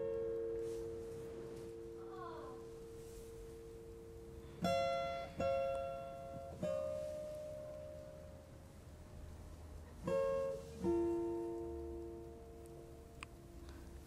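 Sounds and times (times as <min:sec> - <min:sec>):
plucked guitar notes: 0:00.0 - 0:09.0, 0:09.7 - 0:13.8.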